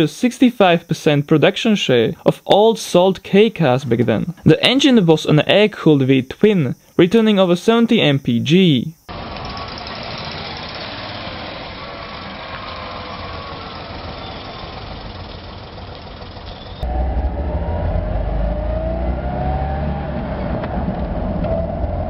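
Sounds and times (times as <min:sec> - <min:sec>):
small car engine running: 0:09.1 - 0:19.2.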